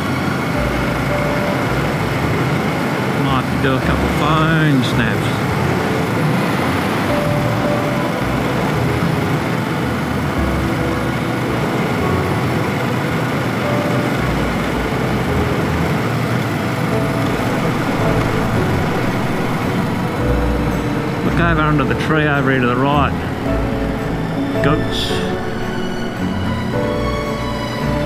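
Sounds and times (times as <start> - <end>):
motorcycle engine: 0.0 - 28.0.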